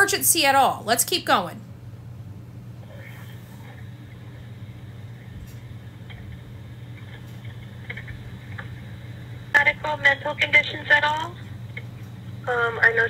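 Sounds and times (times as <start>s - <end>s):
telephone line hum and hiss: 0.0s - 13.0s.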